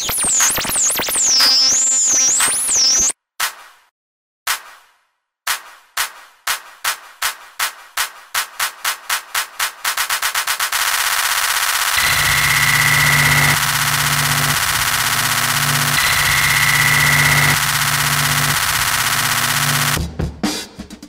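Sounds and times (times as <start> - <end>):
stuttering electronic pulse: 0.0 - 3.1, 10.4 - 20.0
noisy synth wash: 10.8 - 20.0
high synth tone: 11.9 - 20.0.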